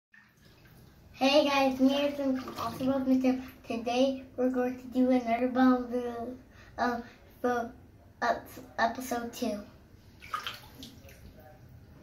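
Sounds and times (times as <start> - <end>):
bathwater splashing: 0.1 - 3.5, 10.1 - 11.4
faint water sloshing: 0.2 - 3.8, 9.9 - 11.7.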